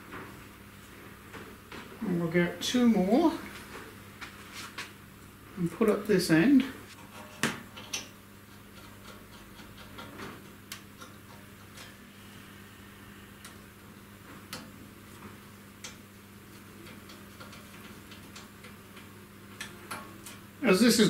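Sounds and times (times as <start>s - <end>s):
steady low hum: 0.0s - 21.0s.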